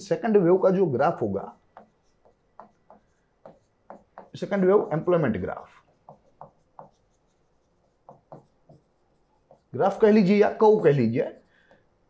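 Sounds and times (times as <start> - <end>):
stylus writing on screen: 1.1 - 12.0
man talking: 4.3 - 5.7, 9.7 - 11.4.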